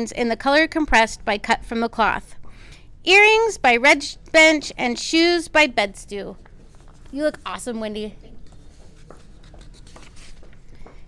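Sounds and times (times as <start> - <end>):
footsteps on concrete floor: 8.3 - 11.0.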